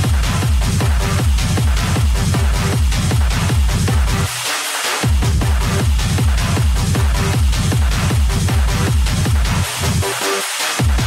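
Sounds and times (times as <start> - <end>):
techno kick drum: 0.0 - 11.0
dense noisy percussion: 5.0 - 10.1.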